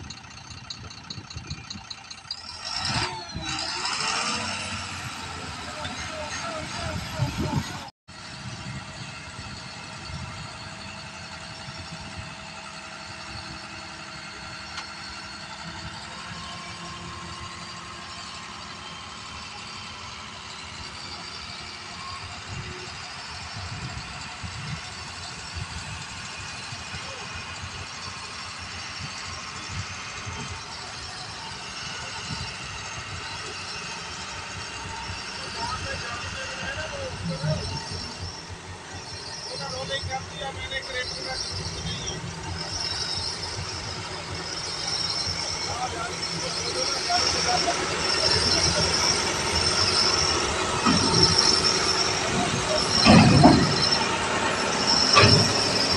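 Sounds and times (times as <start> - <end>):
diesel truck engine running: 0.0 - 55.9
hydraulic hoist raising: 30.5 - 55.9.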